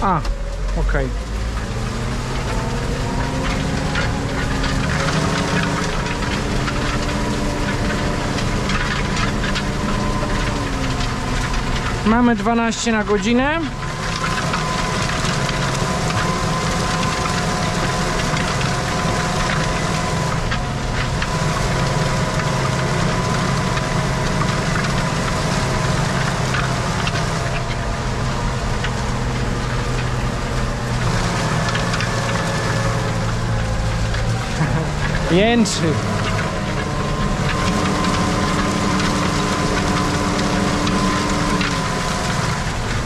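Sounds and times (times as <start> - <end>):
tractor engine running under load: 0.0 - 43.0.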